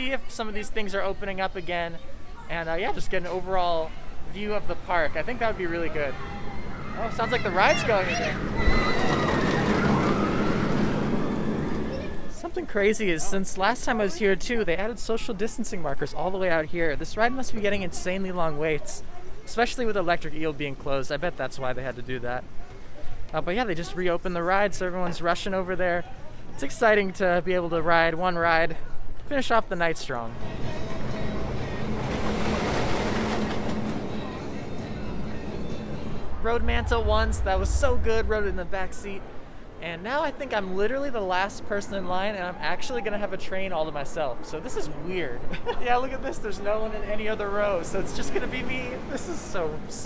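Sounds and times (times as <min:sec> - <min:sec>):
roller coaster rumble with high whine: 0:05.1 - 0:12.4, 0:30.3 - 0:41.7.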